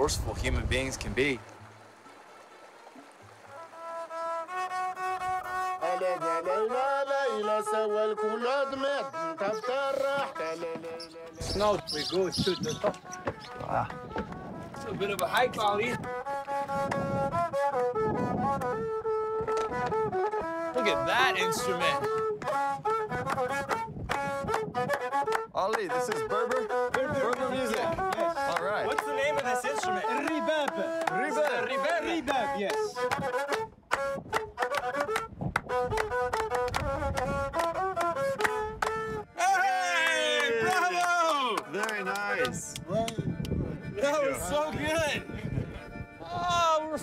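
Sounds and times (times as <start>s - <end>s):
bowed string instrument melody: 0.0s - 47.0s
people hand-clapping a beat: 12.8s - 18.0s, 21.6s - 43.6s.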